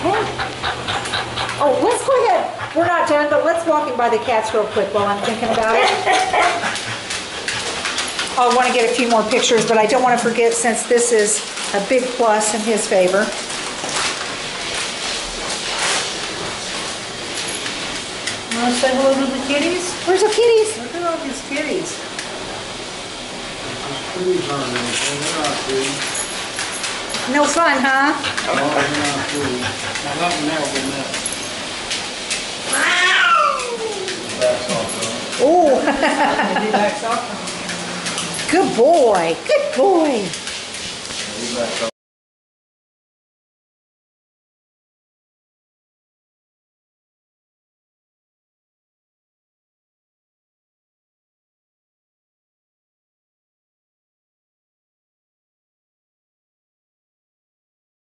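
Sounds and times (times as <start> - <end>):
cat meowing: 32.7 - 34.1.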